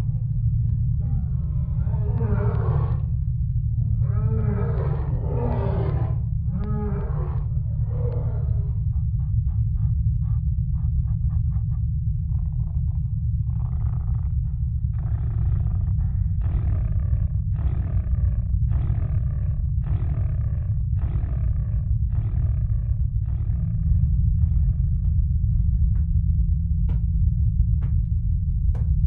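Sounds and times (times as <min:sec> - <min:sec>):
deep steady rumble: 0:00.0 - 0:29.0
rough roar-like bursts: 0:00.9 - 0:03.1, 0:04.0 - 0:08.7.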